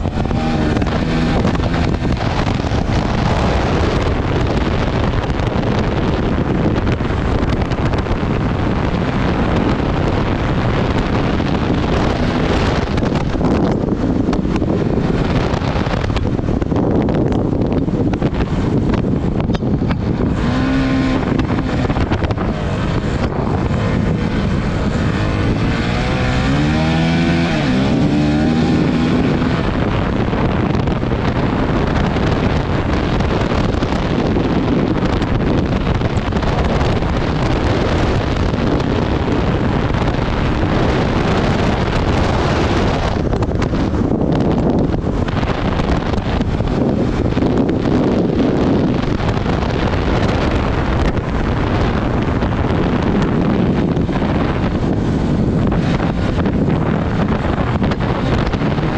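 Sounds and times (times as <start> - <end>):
motorcycle engine running hard: 0.0 - 58.9
wind noise on microphone: 0.0 - 58.9.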